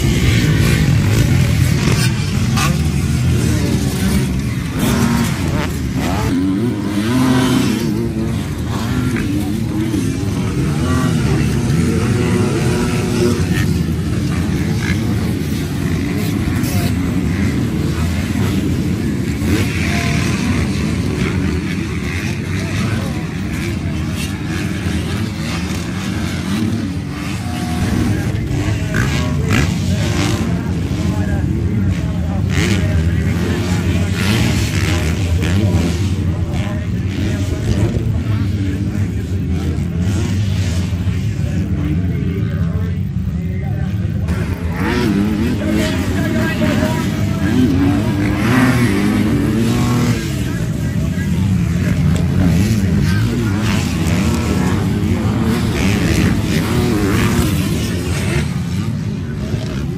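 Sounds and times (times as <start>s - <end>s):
motocross bikes racing past: 0.0s - 59.9s.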